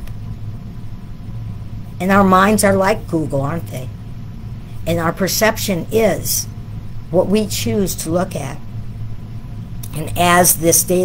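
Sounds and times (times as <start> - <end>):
low humming rumble: 0.0 - 11.0.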